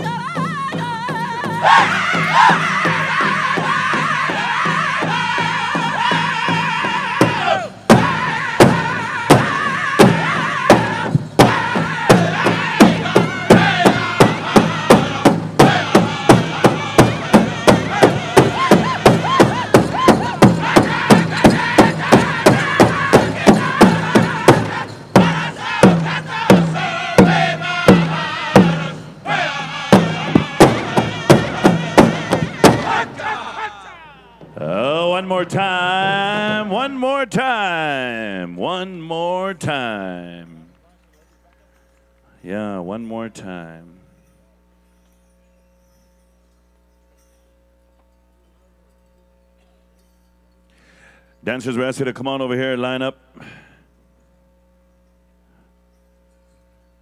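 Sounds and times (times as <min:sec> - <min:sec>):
big drum fast beat: 0:00.0 - 0:33.7
group singing: 0:00.0 - 0:37.4
high sung lead voice: 0:00.0 - 0:40.7.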